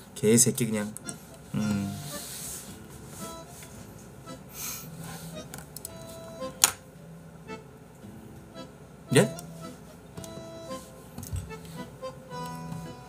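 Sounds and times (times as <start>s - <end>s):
soft music with held notes: 1.0s - 13.0s
man saying a short word: 1.6s - 2.0s.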